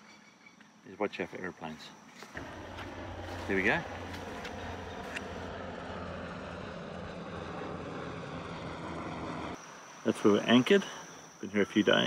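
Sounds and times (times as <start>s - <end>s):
helicopters flying over: 2.4s - 10.4s.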